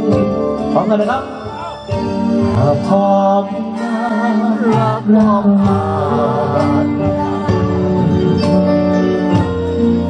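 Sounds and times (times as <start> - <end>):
bass guitar: 0.0 - 10.0
electric guitar: 0.0 - 10.0
man singing into microphone: 2.4 - 8.4.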